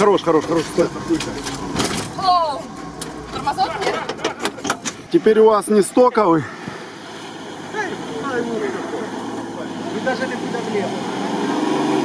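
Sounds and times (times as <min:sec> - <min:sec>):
sharp clicks and rattles: 0:02.8 - 0:05.2.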